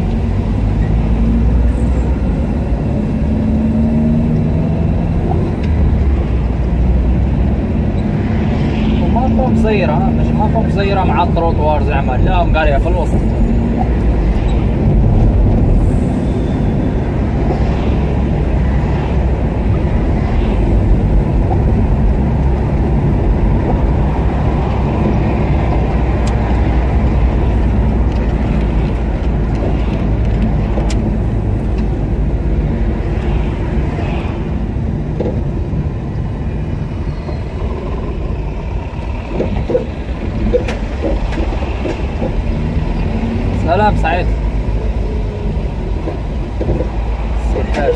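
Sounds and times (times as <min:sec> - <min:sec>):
car engine and road noise: 0:00.0 - 0:47.9.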